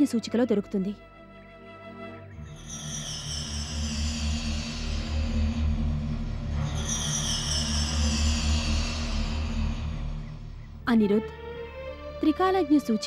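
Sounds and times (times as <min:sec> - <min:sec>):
low pulsing drone: 0:00.0 - 0:13.0.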